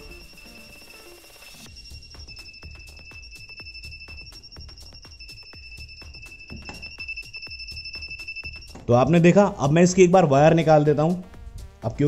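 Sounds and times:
high-pitched tester beep: 0:00.0 - 0:10.1.

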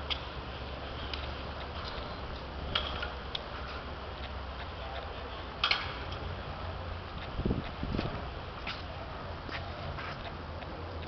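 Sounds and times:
faint voices: 0:03.5 - 0:11.0.

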